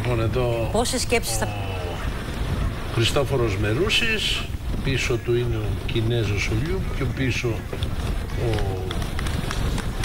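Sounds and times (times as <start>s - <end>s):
commentator speaking: 0.0s - 2.1s
wind rumble: 0.0s - 10.0s
moving vehicle noise: 1.4s - 10.0s.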